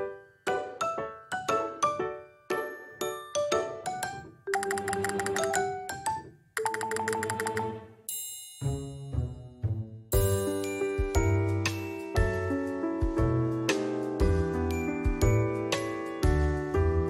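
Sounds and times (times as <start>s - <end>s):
light chiming tune: 1.8s - 12.4s, 14.3s - 16.0s.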